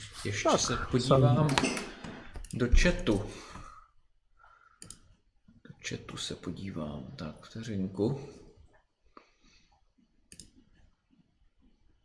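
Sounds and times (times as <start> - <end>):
computer mouse click: 4.8 - 5.1, 10.3 - 10.9.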